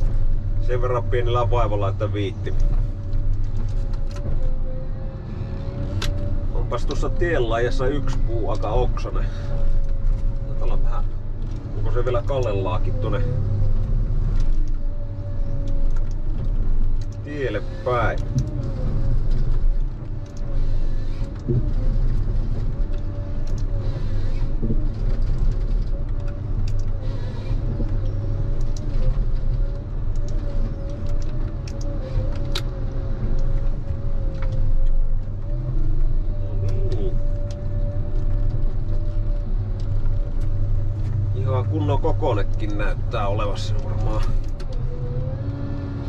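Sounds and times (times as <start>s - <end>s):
harvester engine drone with whine: 0.0s - 46.0s.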